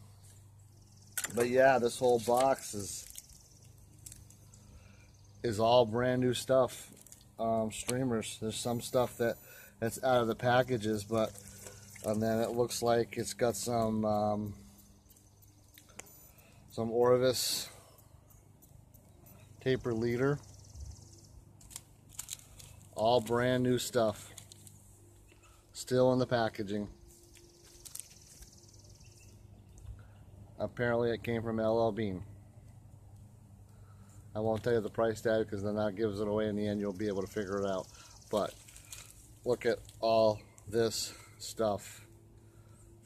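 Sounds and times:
plastic packet crinkling: 1.9 - 4.5, 6.9 - 7.3, 21.6 - 23.4, 27.3 - 28.4, 38.3 - 40.0.

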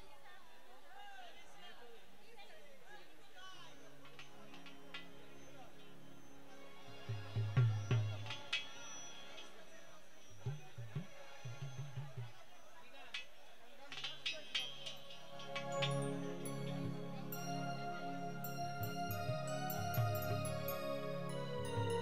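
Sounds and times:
harmonium-like drone: 3.5 - 12.2, 15.0 - 22.0.

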